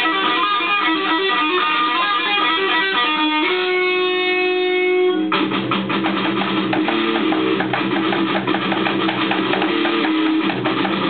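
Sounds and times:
electric guitars strumming chords: 0.0s - 11.0s
drumming: 5.4s - 11.0s.

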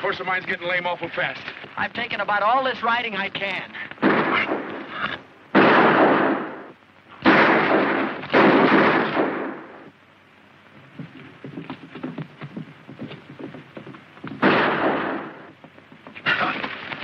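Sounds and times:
echoing gunshots: 4.0s - 9.9s, 14.4s - 15.6s.

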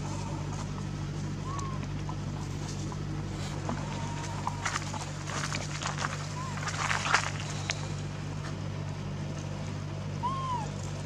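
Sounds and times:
dry leaves rustling and crackling: 0.0s - 8.6s
steady low hum: 0.0s - 11.0s.

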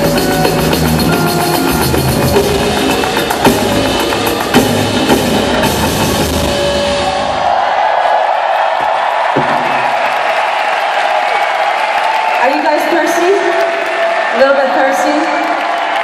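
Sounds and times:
live band with drums: 0.0s - 7.2s
crowd cheering and screaming: 1.1s - 16.0s.

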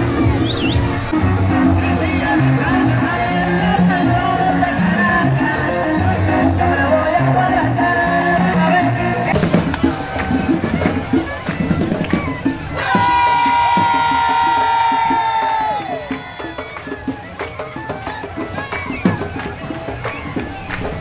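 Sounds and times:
parade music with drums: 0.0s - 4.8s, 8.4s - 21.0s
crowd cheering: 0.0s - 21.0s.

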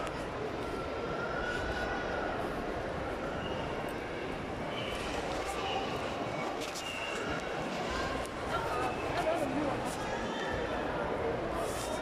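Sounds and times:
continuous hum: 0.0s - 12.0s.

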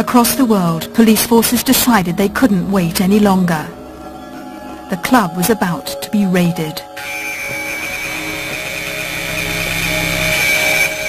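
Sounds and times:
tense background music: 0.0s - 11.0s.

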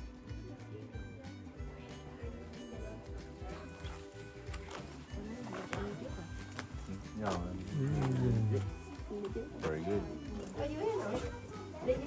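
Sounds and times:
background music with held tones: 0.0s - 12.0s
people's voices: 0.4s - 12.0s.

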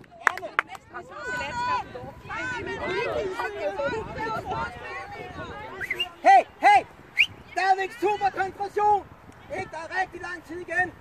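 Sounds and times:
young women shouting: 0.9s - 5.8s.

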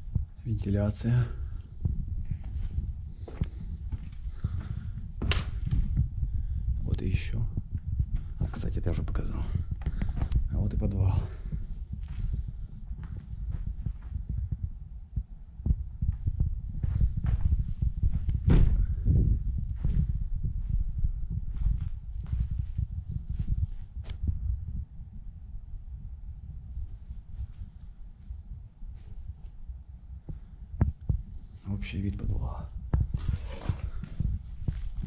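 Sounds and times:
handheld camera rumble: 0.0s - 25.6s, 26.4s - 35.0s
footsteps thumping: 16.8s - 19.1s
footsteps on earth and rubble: 32.9s - 35.0s.

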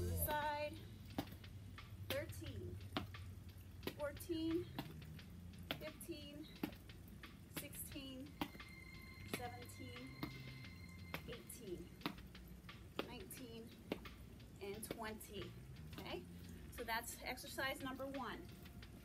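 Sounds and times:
woman counting quietly: 0.0s - 0.9s, 2.1s - 2.8s, 3.9s - 4.9s, 5.8s - 6.7s, 7.6s - 8.4s, 9.3s - 10.3s, 11.2s - 12.0s, 13.0s - 13.8s, 14.6s - 18.5s
light clicks and taps: 0.8s - 19.0s.

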